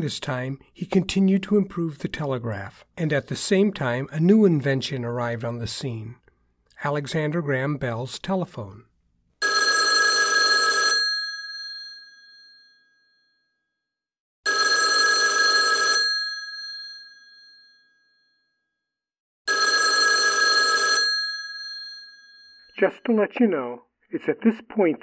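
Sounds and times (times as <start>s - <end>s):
telephone bell ringing: 9.4s - 13.8s, 14.5s - 18.8s, 19.5s - 22.8s.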